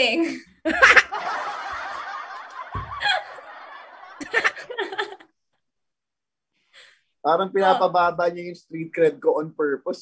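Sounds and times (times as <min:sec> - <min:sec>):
people laughing: 0:00.7 - 0:05.3.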